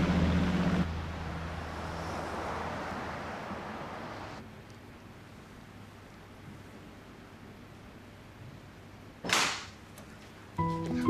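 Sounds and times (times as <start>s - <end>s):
soft music: 10.6s - 11.0s.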